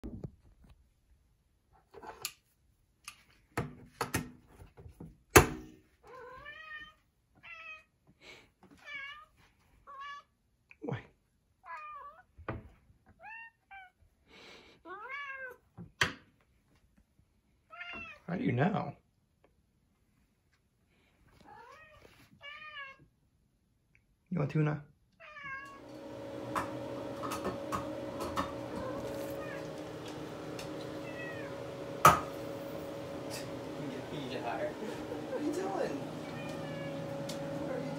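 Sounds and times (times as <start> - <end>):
cat meowing: 6.0 - 7.9, 9.9 - 10.3, 11.6 - 12.3, 13.2 - 14.0, 14.9 - 15.6, 17.7 - 18.3, 21.4 - 23.1, 25.2 - 25.9, 28.7 - 29.9, 30.6 - 32.0, 36.2 - 37.9
steady hum: 25.8 - 37.9.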